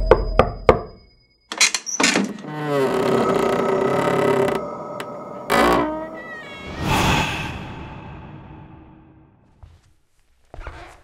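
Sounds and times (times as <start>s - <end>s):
noisy swell: 3.6s - 9.4s.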